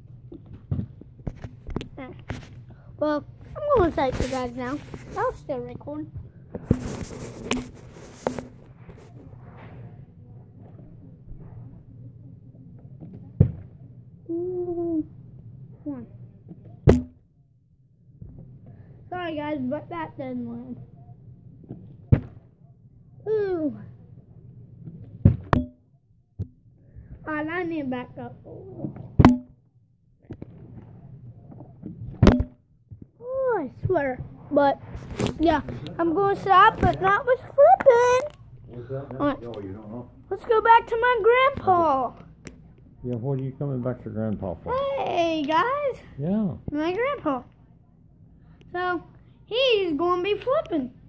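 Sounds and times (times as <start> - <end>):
faint rustling and shuffling: 0.0 - 13.9, 32.9 - 47.7
plastic bottle thudding on carpet: 16.9 - 17.2.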